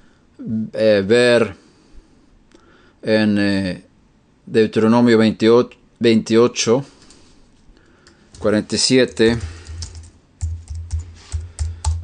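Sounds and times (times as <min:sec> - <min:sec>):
computer keyboard key taps: 0:08.0 - 0:12.0.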